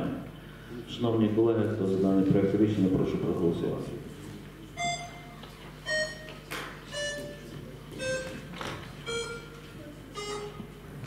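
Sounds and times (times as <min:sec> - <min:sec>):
descending electronic tones: 0:08.0 - 0:09.6.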